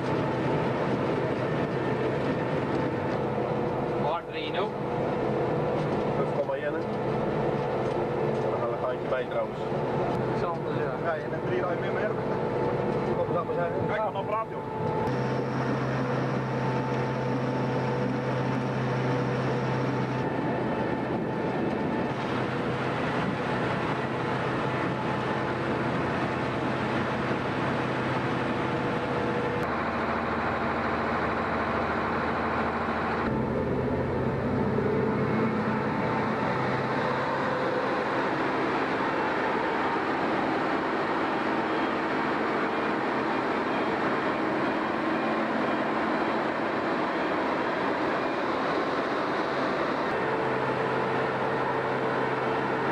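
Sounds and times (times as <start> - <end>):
harvester engine and machinery drone: 0.0 - 52.9.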